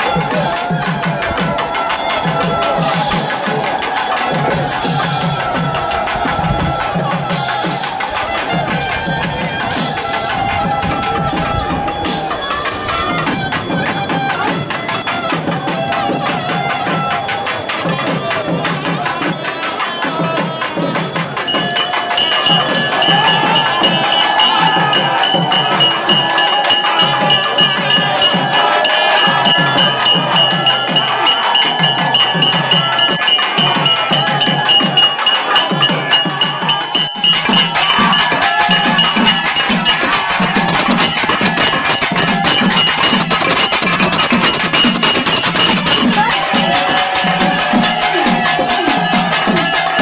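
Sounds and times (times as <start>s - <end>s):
bell ringing continuously: 0.0s - 50.0s
fast drum beat: 0.0s - 50.0s
festival music: 0.0s - 50.0s.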